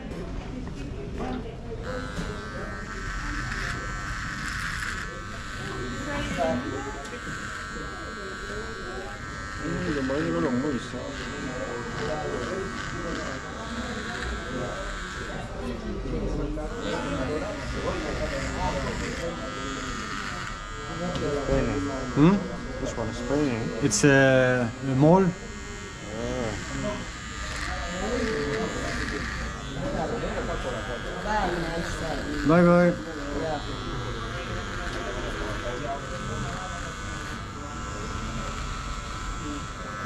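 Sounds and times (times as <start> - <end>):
voices chattering: 0.0 - 40.0
electric hair clipper buzzing: 1.7 - 40.0.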